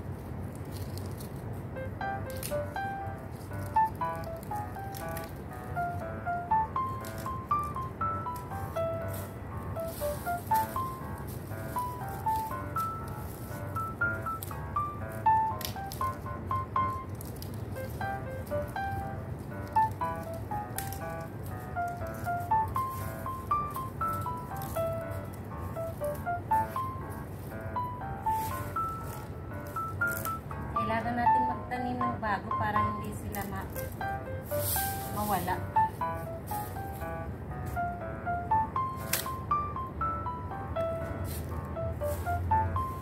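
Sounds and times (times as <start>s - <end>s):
light hopping melody: 1.7s - 43.0s.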